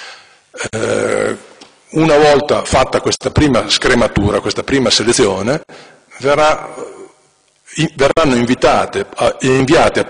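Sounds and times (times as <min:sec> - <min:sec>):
man breathing in: 0:00.0 - 0:00.5.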